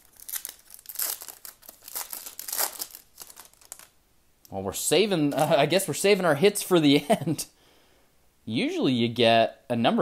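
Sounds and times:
foil wrapper crinkling: 0.0 - 4.0.

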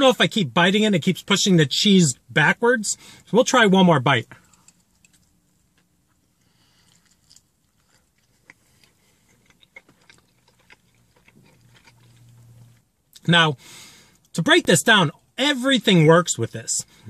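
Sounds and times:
low faint hum: 0.0 - 17.0
man chewing crunchy food: 4.5 - 12.9.

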